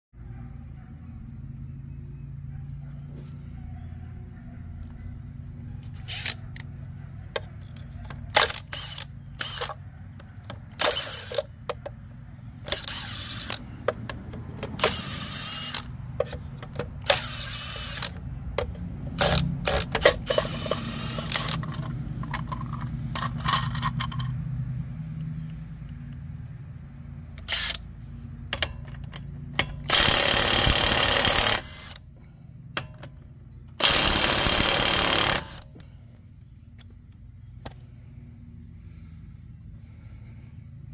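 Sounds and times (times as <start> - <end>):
impact wrench bursts: 6.0 - 6.4, 8.2 - 9.8, 10.6 - 11.8, 12.6 - 24.2, 27.4 - 27.9, 28.6 - 32.1, 33.7 - 35.8.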